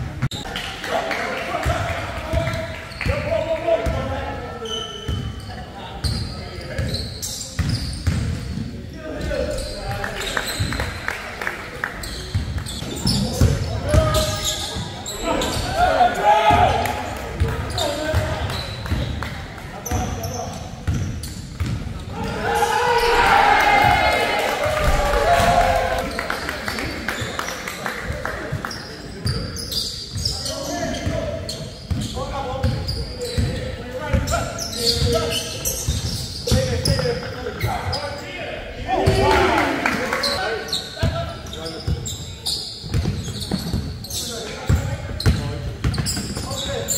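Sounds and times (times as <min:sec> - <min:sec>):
players calling out: 0:22.0 - 0:27.5.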